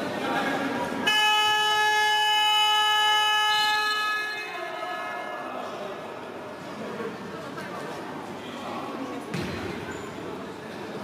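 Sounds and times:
horn steady loud note: 1.0s - 4.9s.

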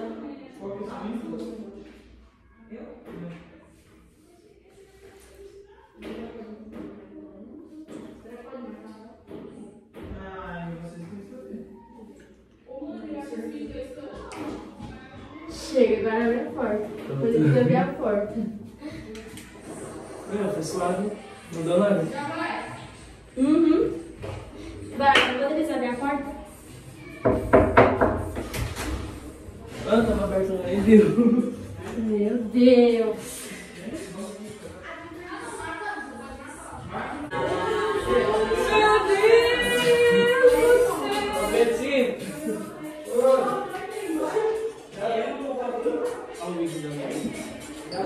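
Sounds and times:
faint muffled voices talking: 0.0s - 48.0s.

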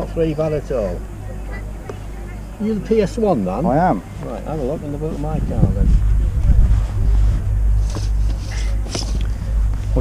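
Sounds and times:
wind buffeting microphone: 0.2s - 10.0s.

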